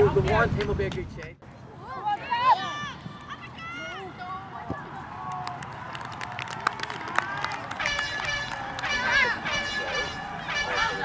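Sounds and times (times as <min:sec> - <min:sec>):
women shouting and cheering: 0:01.8 - 0:05.4, 0:08.4 - 0:11.0.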